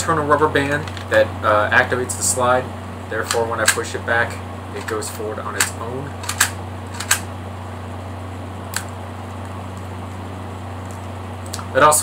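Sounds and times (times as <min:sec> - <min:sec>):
toy pistol slide snapping: 0:05.6 - 0:07.2.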